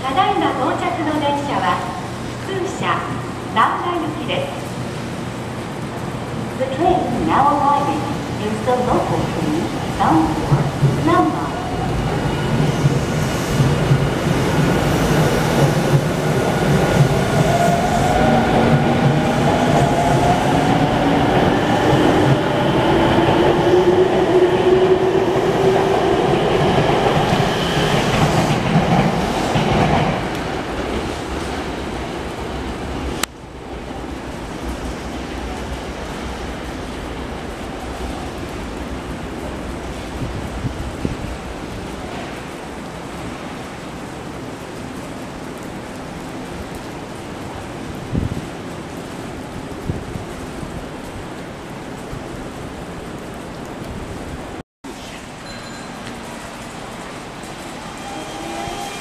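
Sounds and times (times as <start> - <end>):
train wheels rumbling and clattering: 4.6 - 54.6.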